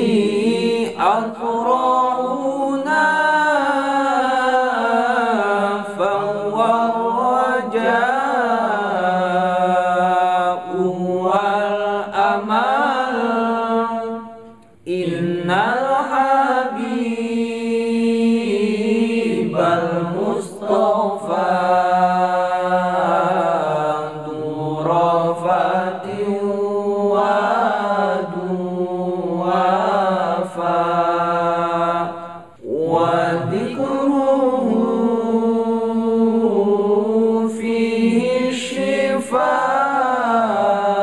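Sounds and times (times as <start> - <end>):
men singing unaccompanied: 0.0 - 41.0.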